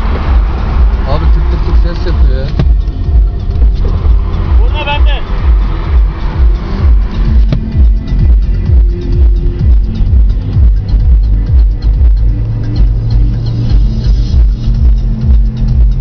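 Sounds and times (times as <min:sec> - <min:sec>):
car engine and road noise: 0:00.0 - 0:16.0
electronic dance music: 0:00.0 - 0:16.0.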